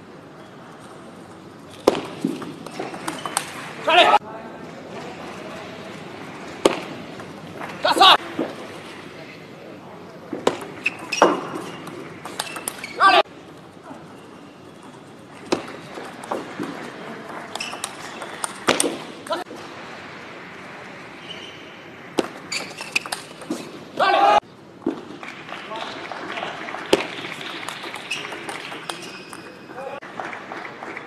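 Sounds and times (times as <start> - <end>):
short loud shouts: 24.0 - 24.4.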